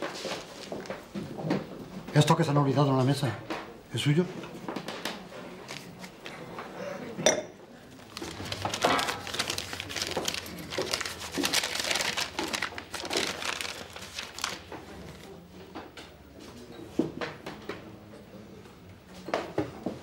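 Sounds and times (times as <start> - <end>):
paper crinkling and rustling: 4.8 - 6.4, 7.8 - 15.4
glass and dishes clinking: 7.2 - 7.6.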